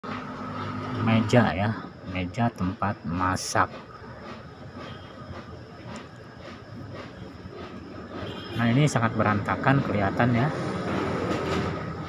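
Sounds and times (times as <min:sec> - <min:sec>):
ambient rumble and hiss: 0:00.1 - 0:12.0.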